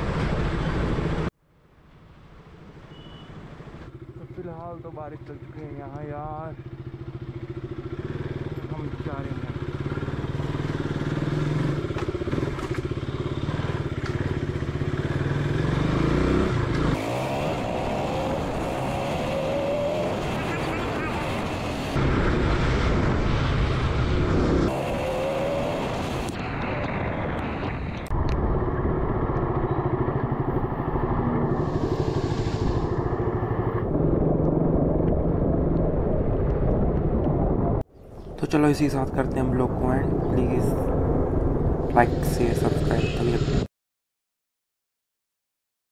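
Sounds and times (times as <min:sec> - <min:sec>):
motorcycle engine running: 0:03.9 - 0:22.0.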